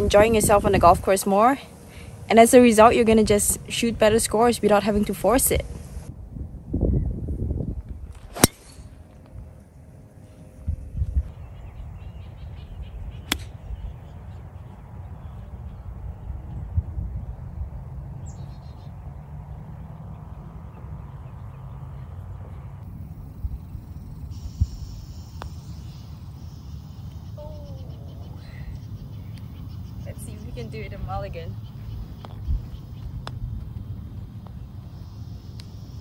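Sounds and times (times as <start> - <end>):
low outdoor background noise: 0.0 - 36.0
golf club striking ball: 8.4 - 8.8, 13.3 - 13.5.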